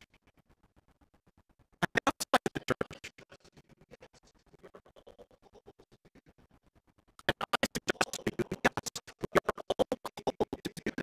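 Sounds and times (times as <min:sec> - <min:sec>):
rapid stuttering audio pulses: 0:01.8 - 0:03.5, 0:07.2 - 0:11.0.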